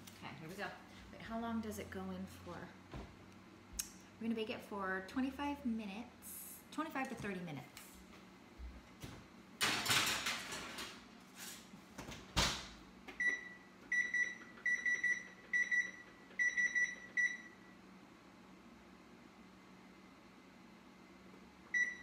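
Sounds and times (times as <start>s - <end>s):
oven door and baking sheet clattering: 9.6s - 12.7s.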